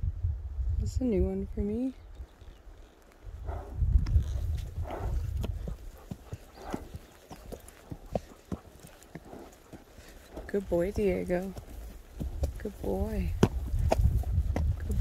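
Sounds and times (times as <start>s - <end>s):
horse hoofbeats walking: 2.2s - 15.0s
low rumble: 3.3s - 6.9s, 10.3s - 15.0s.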